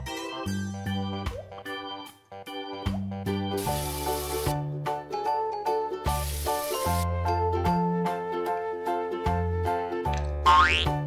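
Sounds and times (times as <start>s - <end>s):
cheerful keyboard music: 0.0s - 11.0s
shower water hissing: 3.6s - 4.6s, 6.1s - 7.1s.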